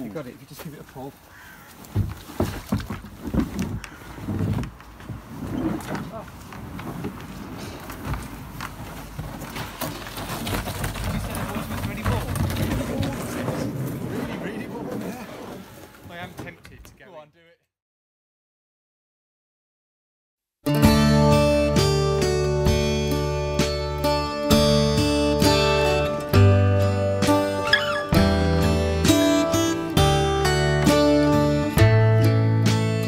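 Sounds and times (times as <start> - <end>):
kayak hull scraping over ground: 0.1 - 16.6.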